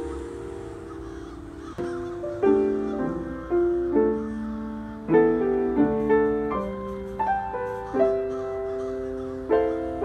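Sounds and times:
crows cawing: 0.0s - 10.0s
solo piano: 0.0s - 10.0s.

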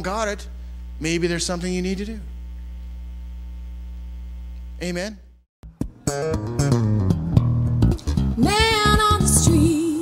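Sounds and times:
electrical mains hum: 0.0s - 5.4s.

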